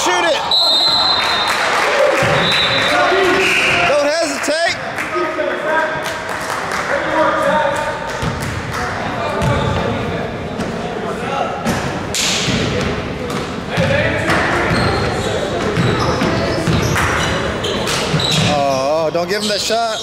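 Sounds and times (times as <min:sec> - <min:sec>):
spectators talking: 0:00.0 - 0:20.0.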